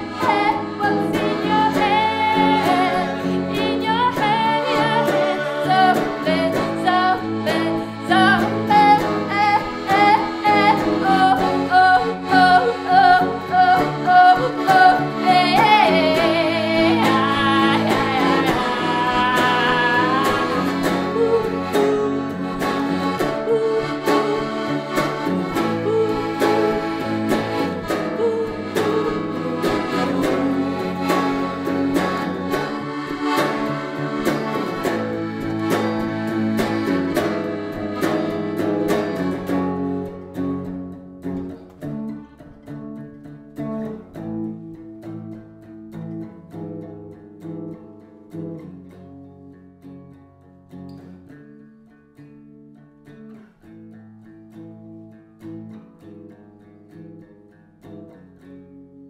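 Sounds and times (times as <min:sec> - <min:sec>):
accordion: 0:00.0 - 0:59.0
electric guitar: 0:00.0 - 0:59.0.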